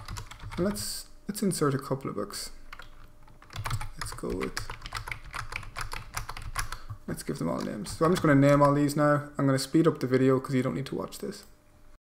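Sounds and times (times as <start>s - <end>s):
keyboard keys clicking: 0.0s - 0.9s, 2.7s - 8.8s.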